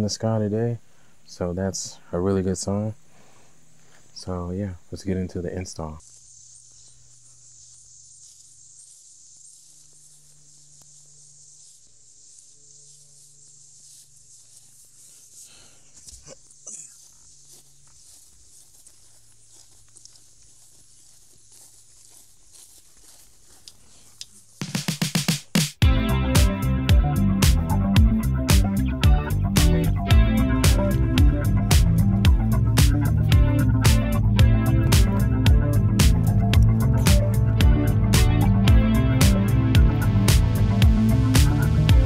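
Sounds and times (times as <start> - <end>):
faint high-pitched outdoor hiss: 0.0 - 25.6
background music with strong beat: 24.6 - 42.0
weak low hum: 25.8 - 42.0.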